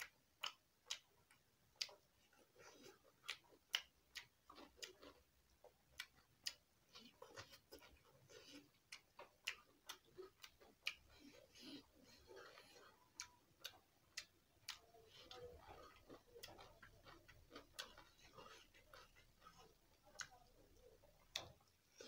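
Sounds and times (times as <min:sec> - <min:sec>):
mouth clicks: 0:00.0 - 0:02.0, 0:02.7 - 0:22.0
person chewing with mouth open: 0:00.0 - 0:22.0
wet lip smacks: 0:03.0 - 0:05.1.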